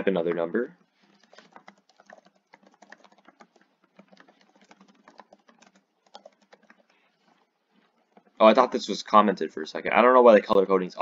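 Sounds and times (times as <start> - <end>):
typing on computer keyboard: 1.0 - 7.0.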